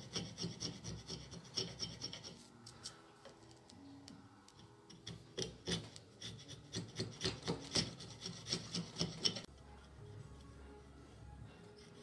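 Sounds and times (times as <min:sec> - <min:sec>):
chisel scraping wood: 0:00.0 - 0:02.6, 0:04.5 - 0:09.5.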